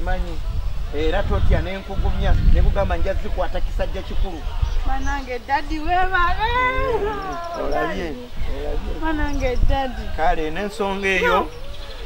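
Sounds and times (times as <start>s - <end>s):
person's drawn-out vocal cry: 6.5s - 8.3s.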